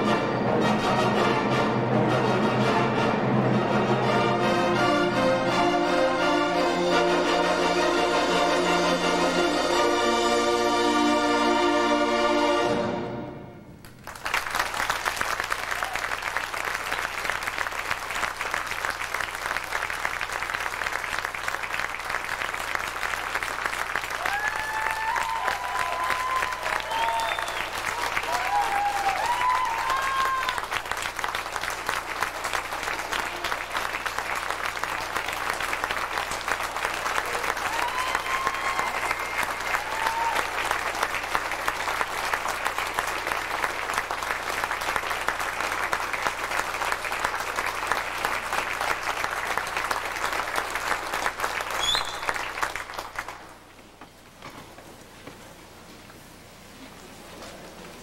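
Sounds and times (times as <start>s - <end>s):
audience applauding: 13.8s - 53.8s
audience cheering: 14.0s - 53.4s.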